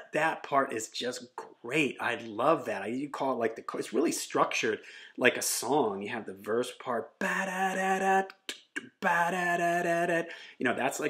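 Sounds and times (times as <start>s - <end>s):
man vocalizing guitar riff: 5.3s - 11.0s.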